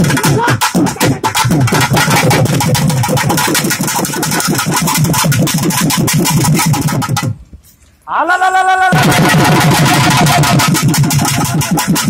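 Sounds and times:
barrel drum beaten fast: 0.0 - 7.4, 8.9 - 12.0.

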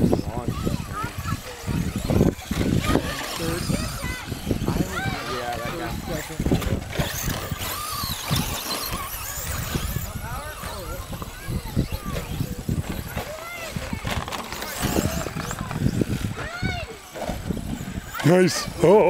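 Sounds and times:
people talking: 0.0 - 19.0
rc car motors whining: 0.0 - 19.0.

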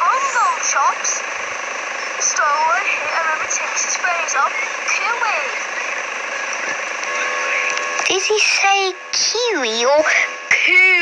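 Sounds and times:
steady hum: 0.0 - 11.0
high-pitched voice sliding sounds: 8.1 - 11.0.

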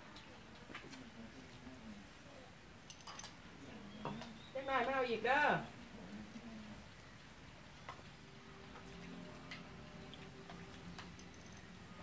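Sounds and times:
faint low hum: 5.6 - 12.0.

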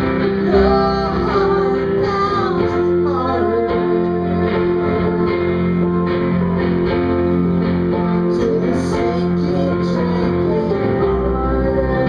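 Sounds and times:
guitar accompaniment: 0.0 - 12.0
woman singing into microphone: 0.4 - 5.9, 8.3 - 12.0.

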